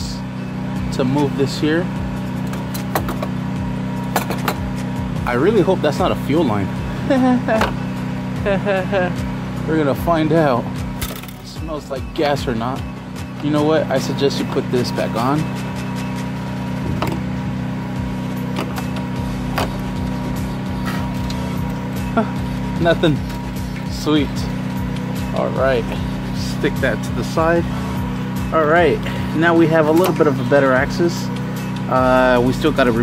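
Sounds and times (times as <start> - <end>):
background music sustained tones: 0.0 - 33.0
steady low hum: 0.0 - 33.0.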